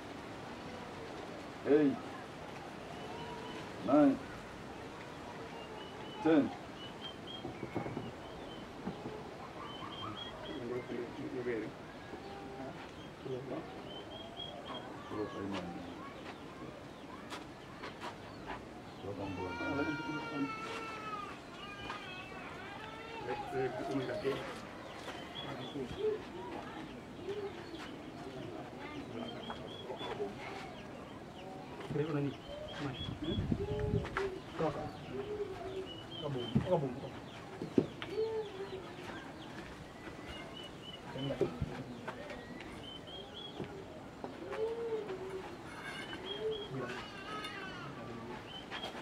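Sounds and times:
birds chirping: 0.0 - 49.0
long high-pitched animal cry: 19.2 - 23.3.

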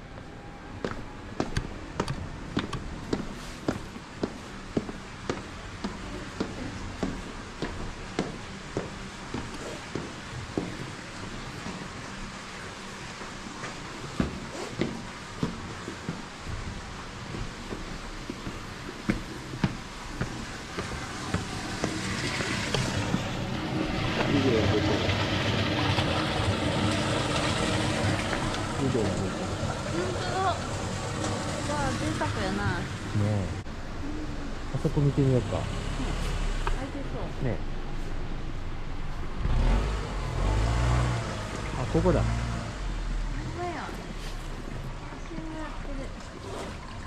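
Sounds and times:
footsteps on concrete: 0.2 - 12.0, 13.1 - 23.2
steady rushing noise: 13.2 - 34.0
small car engine pulling away: 21.5 - 32.2, 35.0 - 36.8, 39.3 - 44.2.

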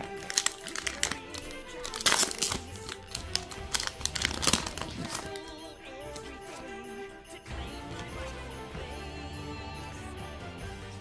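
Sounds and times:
foil wrapper crinkling and tearing: 0.0 - 6.3
background music: 0.0 - 11.0.

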